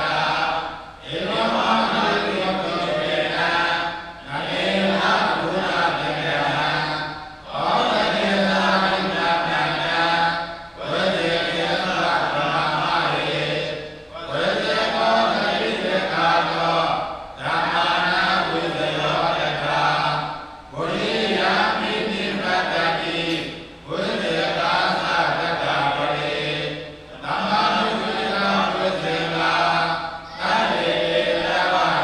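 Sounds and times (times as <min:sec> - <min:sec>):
monks chanting in unison: 0:00.0 - 0:32.0.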